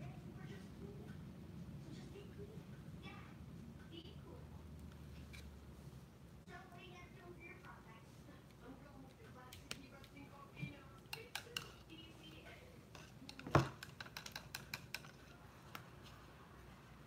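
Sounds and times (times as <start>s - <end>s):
paintbrushes clattering in cup: 12.9s - 15.4s
brushes tapping on table: 13.3s - 15.2s.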